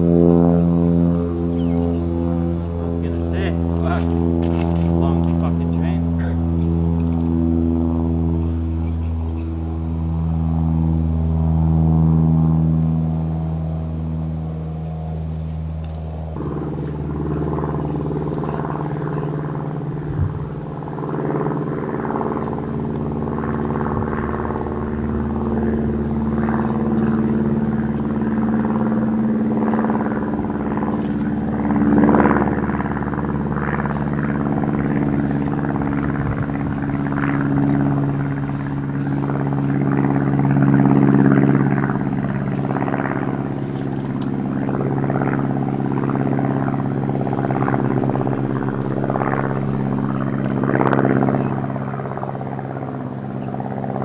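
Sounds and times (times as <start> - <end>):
engine running with low hum: 0.0 - 54.0.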